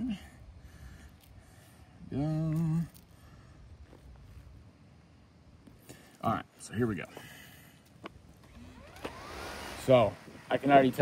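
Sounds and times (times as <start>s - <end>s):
faint outdoor background noise: 0.0s - 11.0s.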